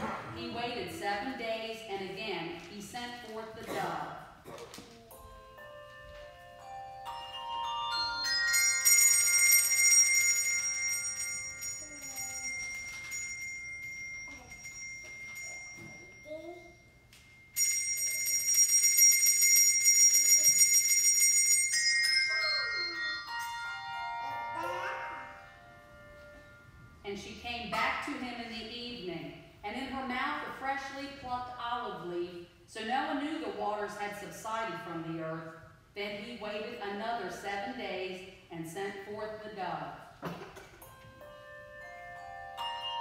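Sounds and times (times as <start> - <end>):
handbell choir playing: 5.1 - 26.9, 40.8 - 43.0.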